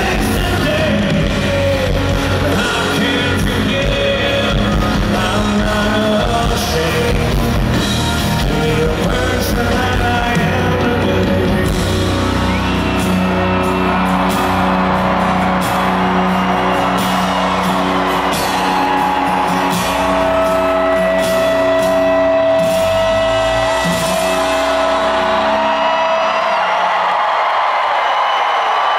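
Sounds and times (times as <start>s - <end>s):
live rock band playing: 0.0s - 26.7s.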